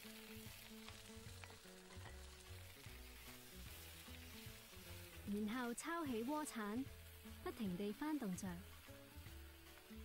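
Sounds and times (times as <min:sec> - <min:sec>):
greens sizzling in oil: 0:00.0 - 0:10.0
soft background music: 0:00.0 - 0:10.0.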